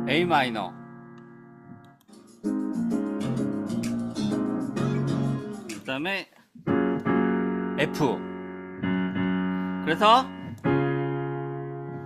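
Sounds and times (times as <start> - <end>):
pop ballad instrumental: 2.2 - 5.9.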